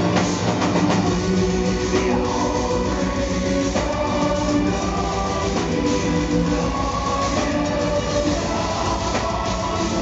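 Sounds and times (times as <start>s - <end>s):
drums: 0.0s - 10.0s.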